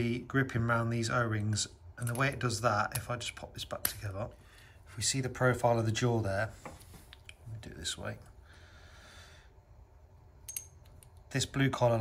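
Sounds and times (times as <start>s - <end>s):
soft breath: 4.3s - 5.0s, 8.4s - 9.7s
small metallic click with ring: 10.4s - 11.1s.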